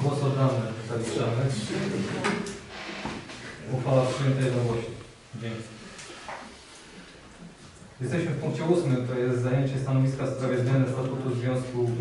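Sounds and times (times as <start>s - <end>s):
person speaking: 0.0s - 2.6s, 8.0s - 12.0s.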